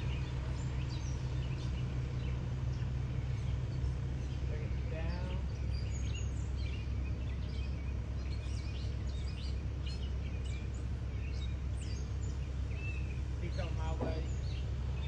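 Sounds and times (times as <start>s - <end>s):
birds chirping and whistling: 0.0s - 15.0s
diesel engine rumbling: 0.0s - 15.0s.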